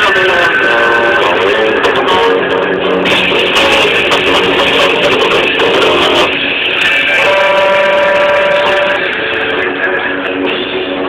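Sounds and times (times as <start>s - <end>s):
distorted electric guitar: 0.0s - 11.0s.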